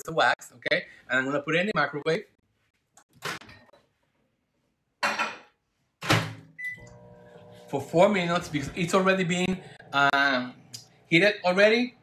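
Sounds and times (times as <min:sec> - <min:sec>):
microwave oven humming: 0:06.6 - 0:12.0.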